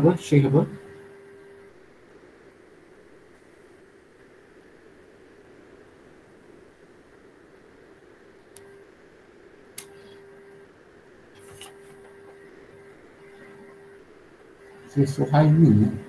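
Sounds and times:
short clicks: 0:09.8 - 0:10.2.

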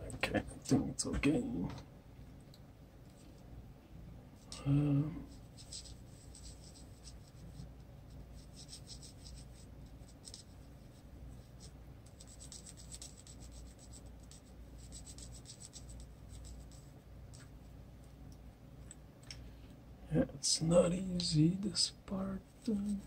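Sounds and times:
colored pencil shading on paper: 0:05.3 - 0:16.9.

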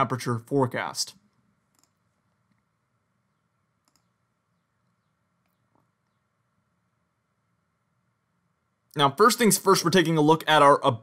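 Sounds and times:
low steady hum: 0:00.0 - 0:11.0
faint short clicks: 0:03.8 - 0:04.1.

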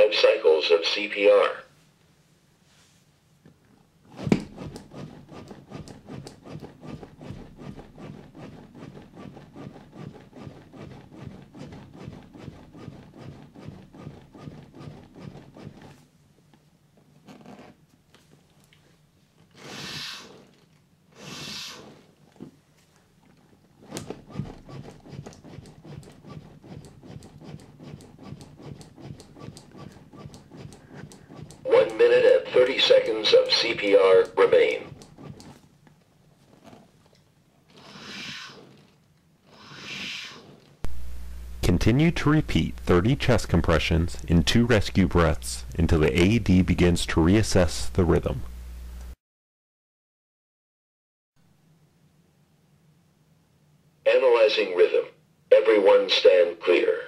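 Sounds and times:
rushes of air breaths: 0:21.1 - 0:22.1, 0:37.7 - 0:38.8, 0:39.5 - 0:40.6.

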